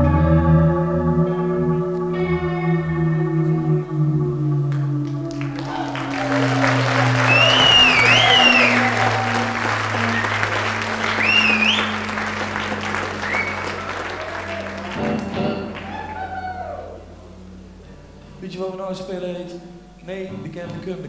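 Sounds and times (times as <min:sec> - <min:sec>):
audience applauding: 0:04.7 - 0:16.9
sharp whistles: 0:05.4 - 0:14.7.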